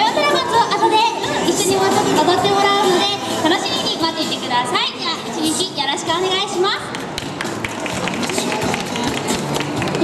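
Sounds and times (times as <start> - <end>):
many hands clapping: 6.9 - 10.0.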